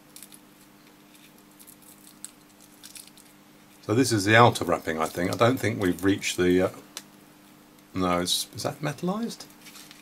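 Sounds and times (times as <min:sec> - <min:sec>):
plastic film crinkling: 0:01.1 - 0:03.4, 0:09.6 - 0:10.0.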